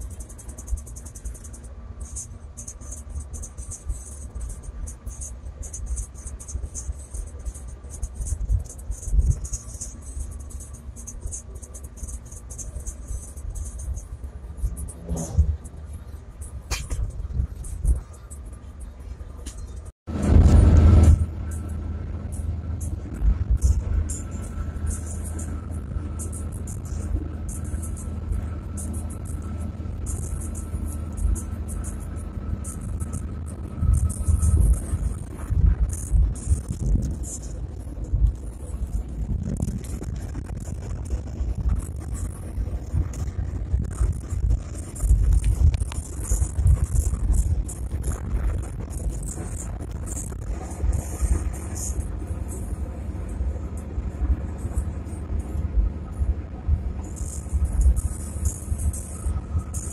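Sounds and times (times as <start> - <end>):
car road rumble: 0.0 - 59.9.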